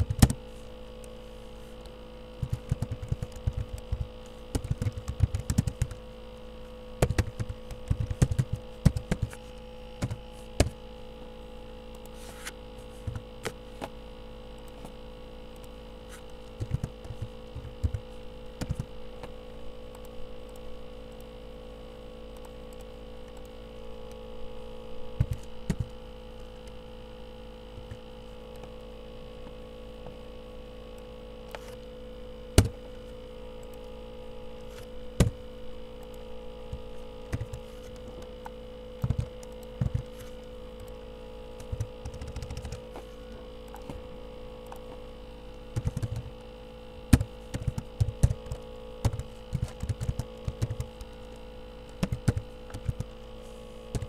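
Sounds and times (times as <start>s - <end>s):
computer keyboard typing: 0.0s - 0.4s, 2.4s - 6.1s, 7.0s - 9.4s, 15.5s - 18.9s, 25.2s - 26.5s, 36.0s - 38.4s, 39.0s - 40.1s, 41.6s - 42.8s, 45.8s - 46.4s, 47.1s - 53.2s
electrical hum: 0.0s - 54.0s.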